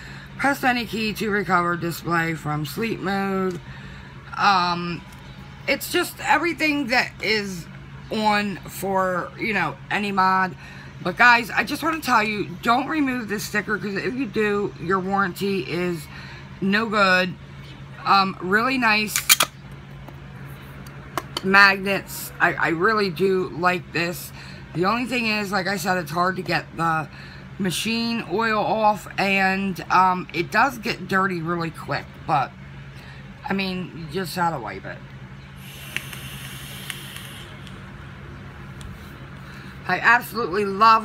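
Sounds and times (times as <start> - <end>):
low hum: 31.4 - 41.0
vape atomizer hissing: 35.6 - 37.8.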